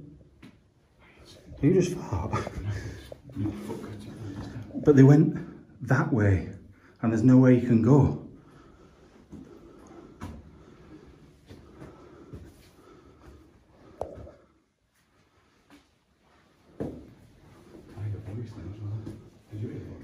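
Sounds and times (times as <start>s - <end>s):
soft footsteps on stairs: 8.5s - 20.0s.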